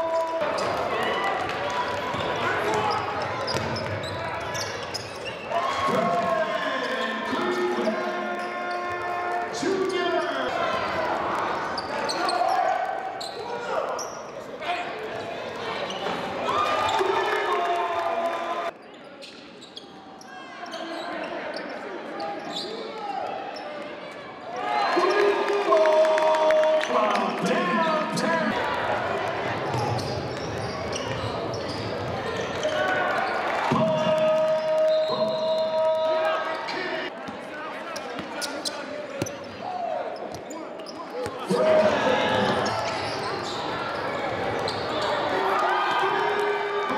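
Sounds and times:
indistinct shouts echoing: 0:00.0 - 0:04.5, 0:05.4 - 0:18.8, 0:32.1 - 0:46.9
voices of players and crowd: 0:00.0 - 0:46.9
sneaker squeaks: 0:02.1 - 0:05.5, 0:11.5 - 0:14.4, 0:18.8 - 0:22.9, 0:29.7 - 0:33.5, 0:37.9 - 0:41.4, 0:42.5 - 0:45.3.

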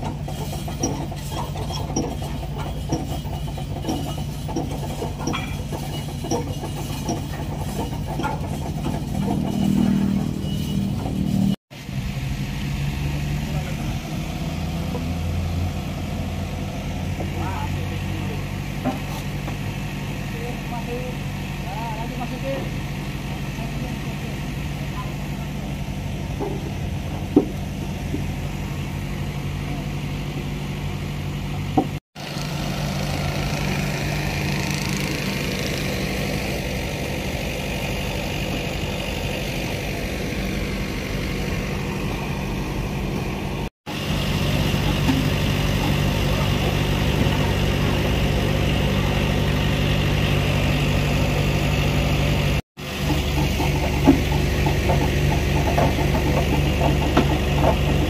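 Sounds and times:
diesel engine idling: 0:00.0 - 0:58.0.

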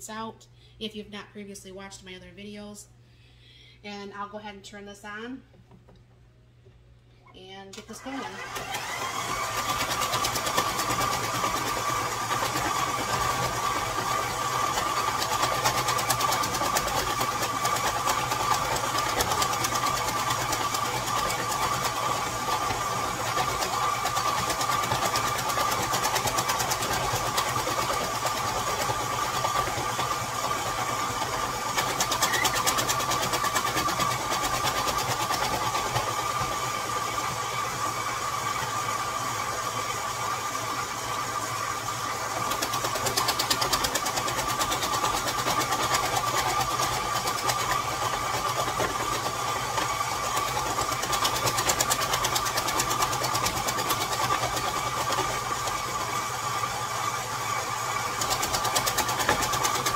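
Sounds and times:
fast ticking of dicing attachment: 0:07.8 - 0:38.7, 0:42.2 - 0:59.9
stand mixer motor whine: 0:07.8 - 0:59.9.

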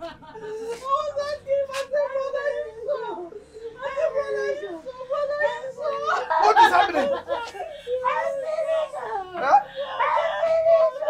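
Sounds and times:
woman wailing: 0:00.3 - 0:11.0.

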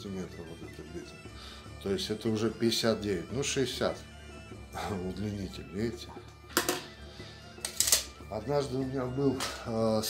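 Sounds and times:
background music: 0:00.0 - 0:10.0
tools set down on wooden stool: 0:06.5 - 0:07.0.

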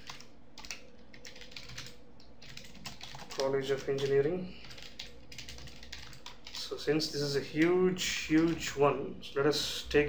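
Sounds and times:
computer keyboard typing: 0:00.0 - 0:06.8, 0:08.3 - 0:08.8.

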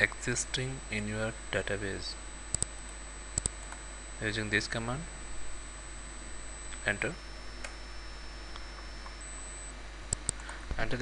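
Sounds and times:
background hiss: 0:00.0 - 0:11.0
faint high-pitched whine: 0:00.0 - 0:11.0
low electrical hum: 0:00.0 - 0:11.0.

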